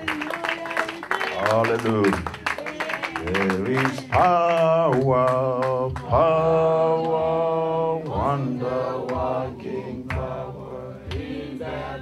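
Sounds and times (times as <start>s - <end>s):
person singing worship song: 0.0s - 12.0s.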